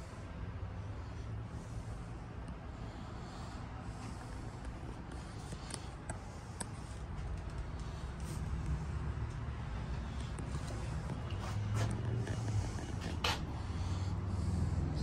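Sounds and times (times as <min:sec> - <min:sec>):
low engine rumble: 0:00.0 - 0:15.0.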